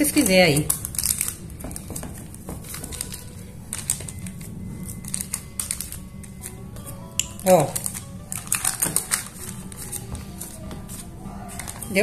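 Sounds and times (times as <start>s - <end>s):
paper crinkling: 0.0s - 6.6s, 7.2s - 12.0s.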